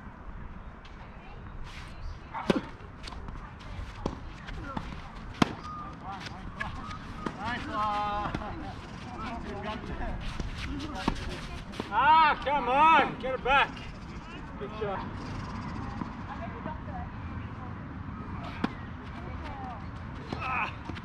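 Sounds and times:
tennis ball hit by racket: 0:02.4 - 0:07.6.

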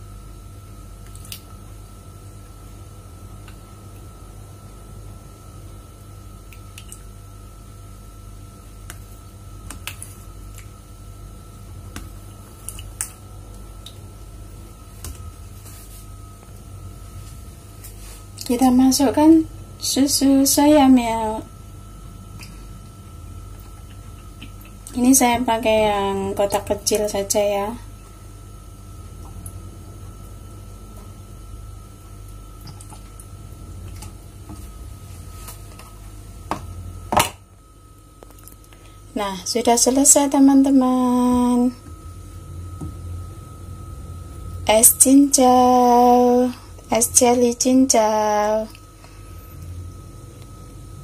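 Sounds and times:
faint high whine: 0:00.0 - 0:51.0
low hum: 0:00.0 - 0:51.0.

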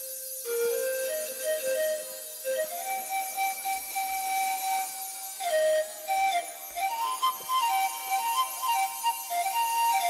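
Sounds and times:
wind instrument melody: 0:00.0 - 0:10.0.

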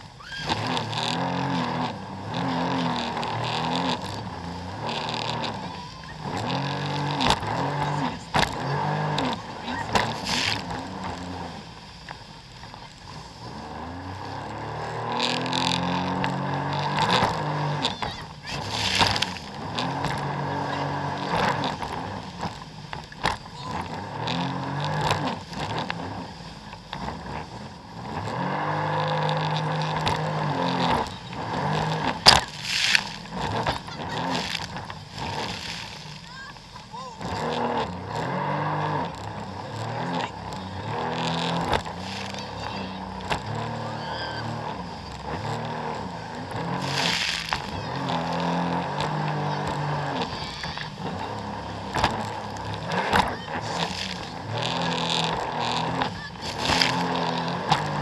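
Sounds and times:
jet ski engine revving: 0:00.0 - 0:58.0
rush of water and wind: 0:00.0 - 0:58.0
water slapping the hull: 0:00.0 - 0:58.0.

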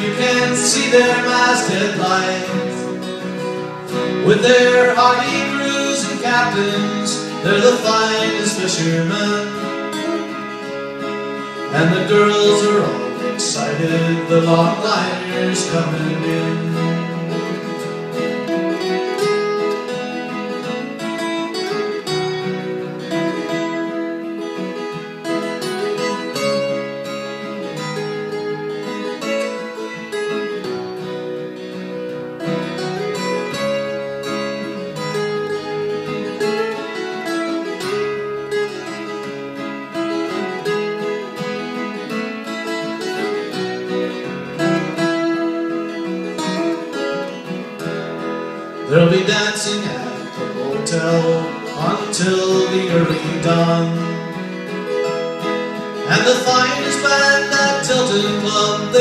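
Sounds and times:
acoustic guitars strumming: 0:00.0 - 0:59.0.

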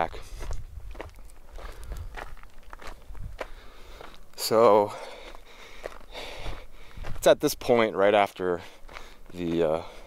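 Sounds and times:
footsteps on rocky ground: 0:00.0 - 0:10.0.

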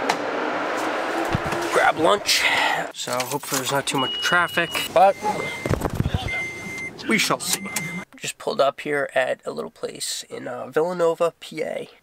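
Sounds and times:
high electronic beep: 0:03.9 - 0:08.0.

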